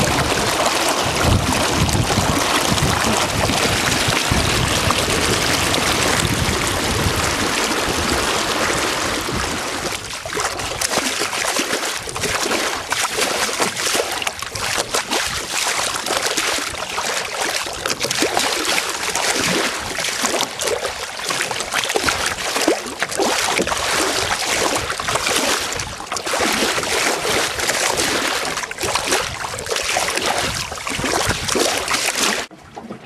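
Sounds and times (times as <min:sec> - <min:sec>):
water rushing along boat hull: 0:00.0 - 0:33.0.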